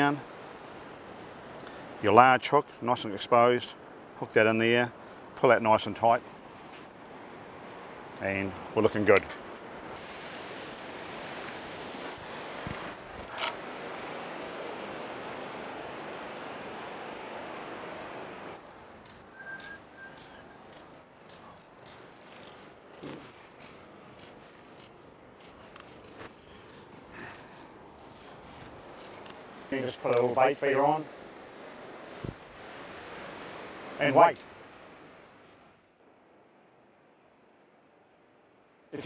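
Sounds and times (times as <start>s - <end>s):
ocean surf on sandy beach: 0.0s - 39.0s.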